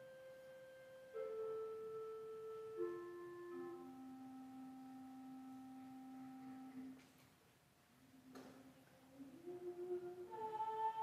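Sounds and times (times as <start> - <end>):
soft instrumental music: 0.0 - 7.0.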